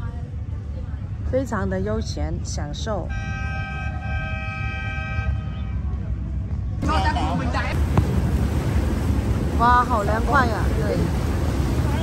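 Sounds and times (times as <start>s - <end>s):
boat horn: 3.1s - 5.8s.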